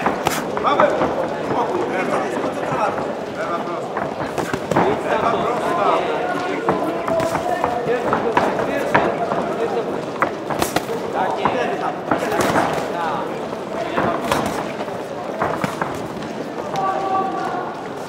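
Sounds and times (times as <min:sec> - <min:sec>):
gloved punches smacking: 0:00.0 - 0:00.6, 0:04.3 - 0:05.0, 0:10.2 - 0:11.1
people shouting: 0:04.2 - 0:09.7, 0:15.4 - 0:18.0.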